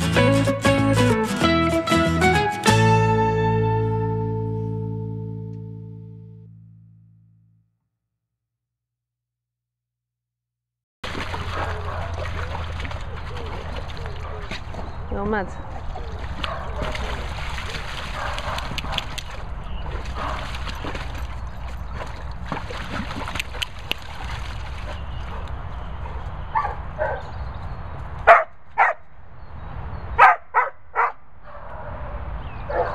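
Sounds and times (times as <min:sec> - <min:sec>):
dog splashing in paddling pool: 0:11.0 - 0:26.2
dogs barking: 0:11.4 - 0:12.6, 0:14.0 - 0:14.9, 0:16.0 - 0:19.3, 0:19.9 - 0:20.9, 0:25.2 - 0:27.4, 0:28.2 - 0:29.0, 0:30.1 - 0:32.9.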